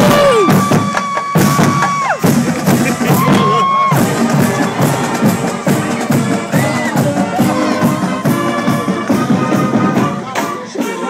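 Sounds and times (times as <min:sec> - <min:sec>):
bass drums beating: 0:00.0 - 0:10.7
marching band playing: 0:00.0 - 0:11.0.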